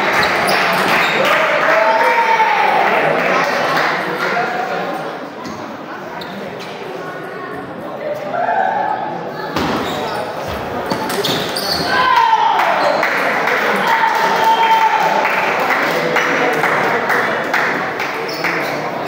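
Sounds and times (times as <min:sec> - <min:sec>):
voices in a hall: 0:00.0 - 0:19.0.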